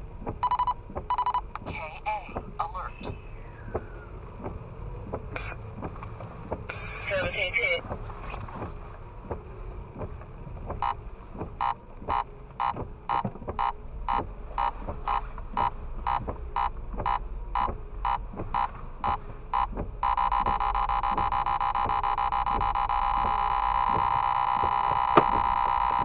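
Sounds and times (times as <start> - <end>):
radar detector beeping: 0.4 - 1.5, 10.8 - 11.0, 11.6 - 26.0.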